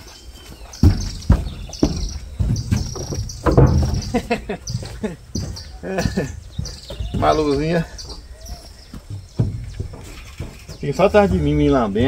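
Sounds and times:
insects chirping: 0.0s - 12.0s
thumps on wooden trailer floor: 0.7s - 12.0s.

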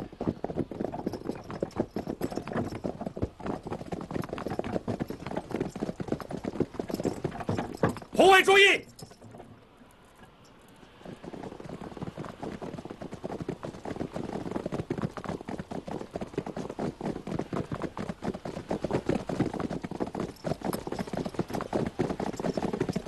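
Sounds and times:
hoofbeats of many horses: 0.0s - 9.3s, 10.0s - 23.0s.

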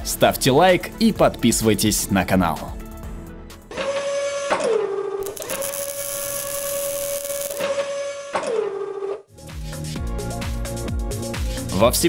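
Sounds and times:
servo electric whine: 5.2s - 7.9s.

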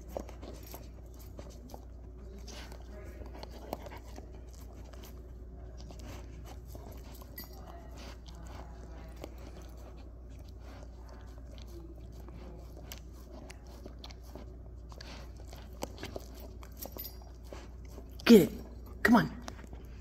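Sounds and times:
dog licking and nibbling: 0.0s - 20.0s.

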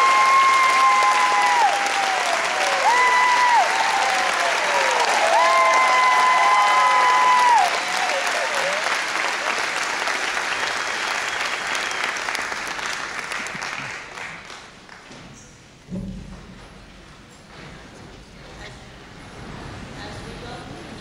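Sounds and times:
high cheers sliding down in pitch: 0.0s - 12.7s
audience applauding: 0.0s - 15.3s.

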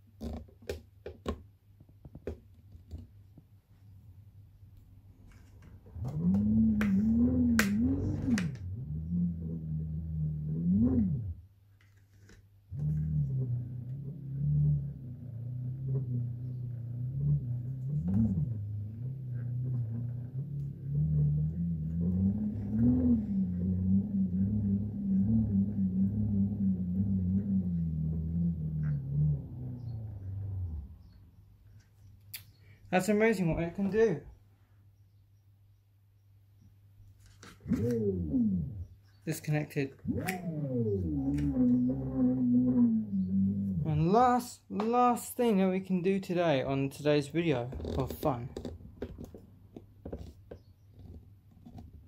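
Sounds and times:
motor humming with wavering pitch: 6.0s - 11.4s, 12.8s - 31.3s, 37.7s - 39.0s, 40.0s - 44.0s.

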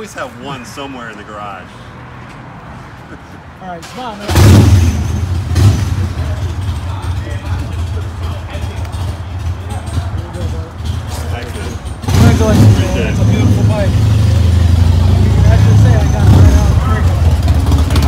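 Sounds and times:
motorcycle engine idling: 5.0s - 15.2s, 16.8s - 18.0s.

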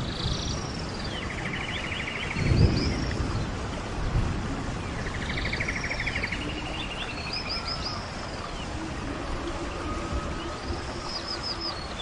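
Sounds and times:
steady background hiss: 0.0s - 12.0s
birds trilling: 4.9s - 12.0s.

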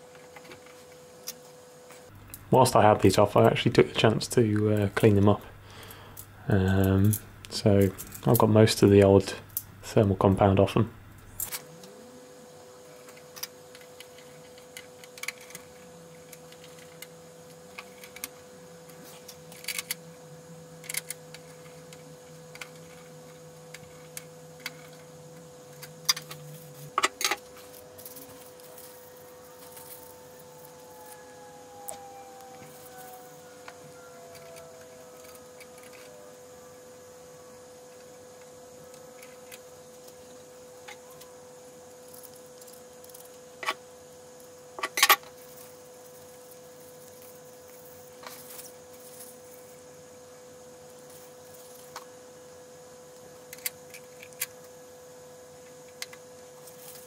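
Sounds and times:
faint steady whine: 0.0s - 57.0s.

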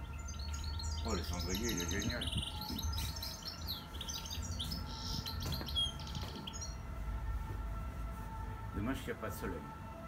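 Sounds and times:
birds chirping: 0.0s - 7.0s.

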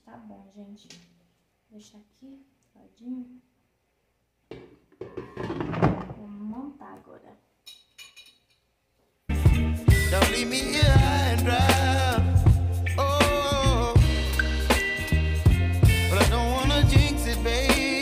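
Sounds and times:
loud music with a beat: 9.3s - 18.0s.

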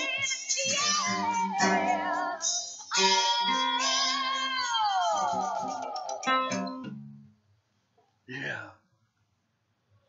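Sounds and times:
acoustic guitar ringing: 6.3s - 7.4s.

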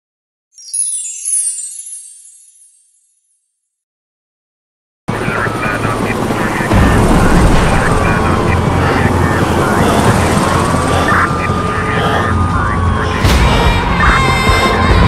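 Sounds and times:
helicopter rotor rumble: 5.1s - 15.0s
voices: 5.1s - 15.0s.

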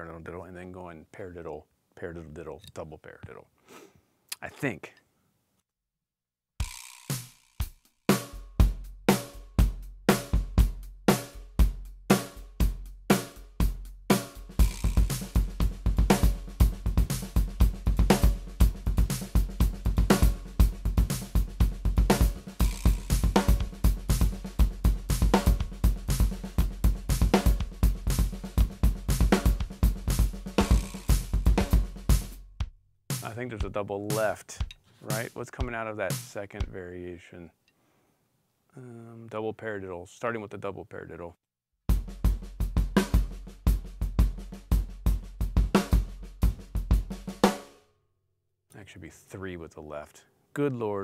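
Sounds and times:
drum kit playing rudiment pattern: 6.6s - 36.8s, 41.9s - 47.7s.

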